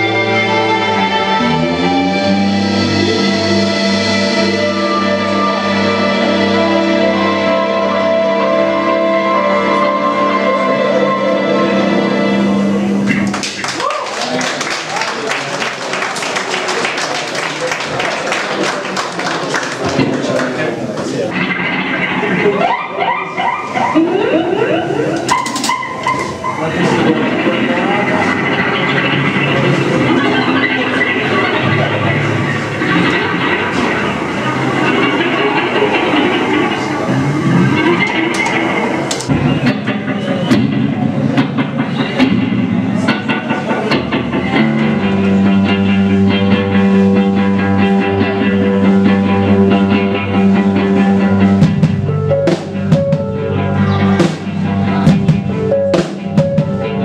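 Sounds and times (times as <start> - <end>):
electric guitar lines: 0.0 - 57.0
rock band playing: 0.0 - 57.0
voices in the room: 8.5 - 52.0.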